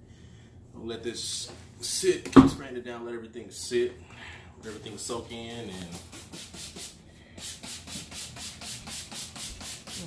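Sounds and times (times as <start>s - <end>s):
spray bottle hissing bursts: 5.9s - 10.0s.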